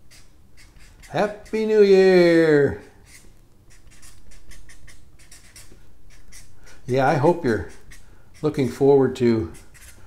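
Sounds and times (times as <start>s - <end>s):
marker stroking on paper: 0.0s - 1.7s, 3.0s - 10.0s.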